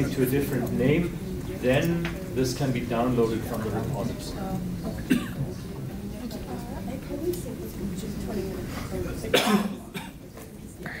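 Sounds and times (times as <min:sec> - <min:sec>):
person coughing: 0:05.1 - 0:05.4, 0:09.3 - 0:10.2.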